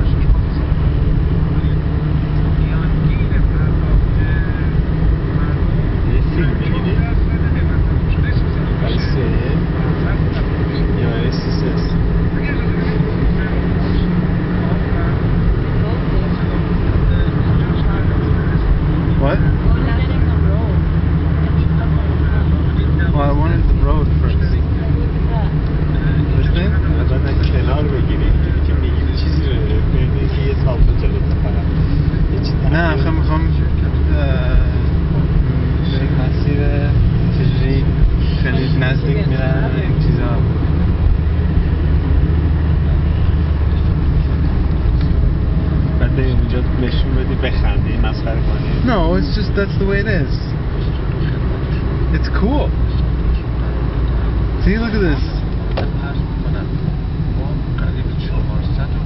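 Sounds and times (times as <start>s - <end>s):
car engine and tyre rumble: 0.0s - 59.0s
voices talking: 0.0s - 59.0s.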